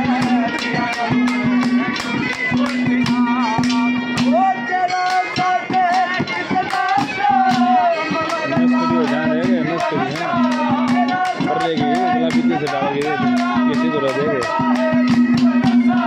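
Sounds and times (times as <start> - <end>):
hand percussion striking: 0.0 - 16.0
harmonium drone: 0.0 - 16.0
wavering melody line: 0.0 - 16.0.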